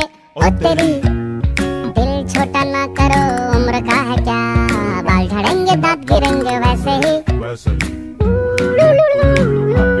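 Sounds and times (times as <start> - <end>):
drum beats: 0.4 - 10.0.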